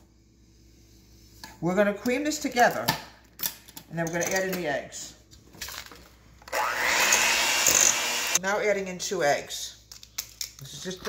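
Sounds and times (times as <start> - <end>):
electric hand mixer running: 6.5 - 8.4.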